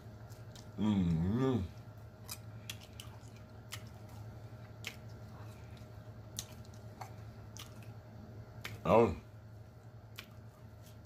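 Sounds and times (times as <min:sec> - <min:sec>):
person chewing with wet smacks: 0:00.0 - 0:08.9, 0:09.7 - 0:11.0.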